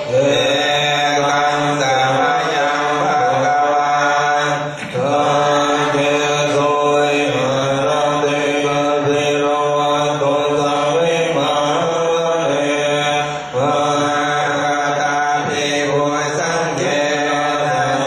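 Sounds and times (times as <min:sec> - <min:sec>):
chanted voices: 0:00.0 - 0:18.0.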